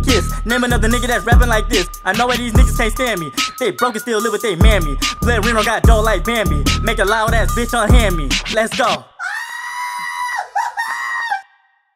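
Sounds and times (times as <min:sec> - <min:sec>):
high-pitched scream-like cries: 0:09.2 - 0:11.7.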